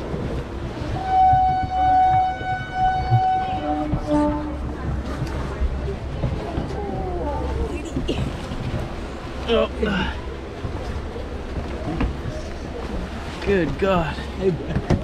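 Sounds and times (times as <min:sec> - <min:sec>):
low train rumble: 0:00.0 - 0:15.0
train horn: 0:00.8 - 0:04.7.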